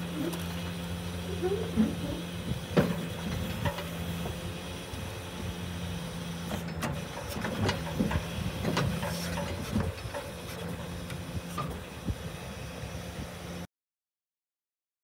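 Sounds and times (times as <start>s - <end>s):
hydraulic ramp humming: 0.0s - 13.6s.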